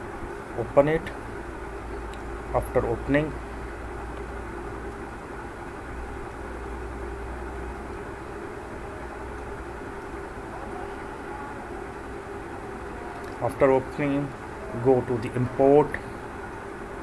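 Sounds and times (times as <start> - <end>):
background hum and hiss: 0.0 - 17.0
faint constant tone: 0.0 - 17.0.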